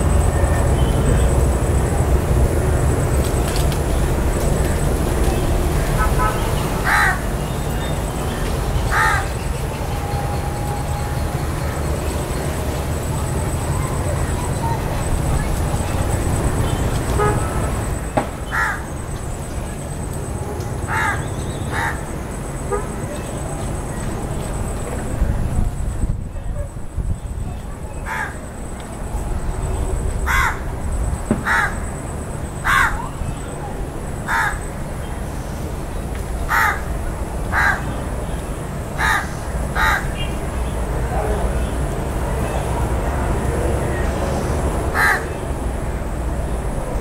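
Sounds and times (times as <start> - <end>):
crow cawing: 6.2 - 7.3, 8.9 - 9.4, 18.5 - 18.9, 20.8 - 22.1, 28.0 - 28.4, 30.2 - 30.7, 31.4 - 31.9, 32.6 - 33.1, 34.2 - 34.7, 36.5 - 36.9, 37.5 - 38.0, 39.0 - 40.3, 44.9 - 45.3.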